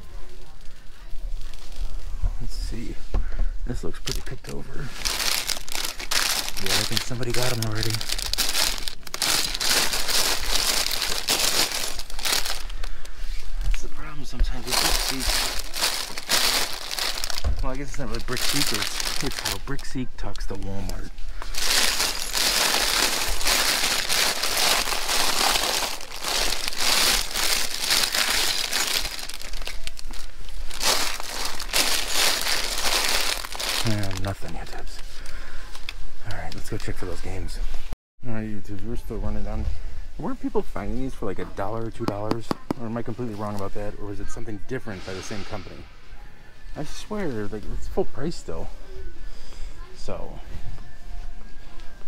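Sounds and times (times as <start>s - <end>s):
plastic packets crinkling and rustling: 0.0s - 2.9s, 3.7s - 37.5s.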